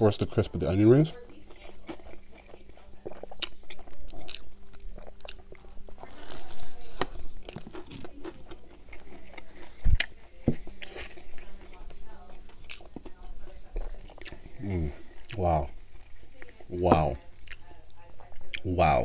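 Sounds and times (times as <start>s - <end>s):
crunchy chewing of burger: 0.3s - 19.0s
wet mouth sounds: 1.6s - 10.2s, 17.1s - 17.7s, 18.4s - 18.7s.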